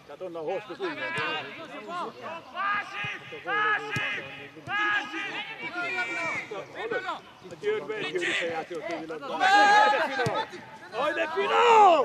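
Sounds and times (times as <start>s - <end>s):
men shouting: 11.0s - 12.0s.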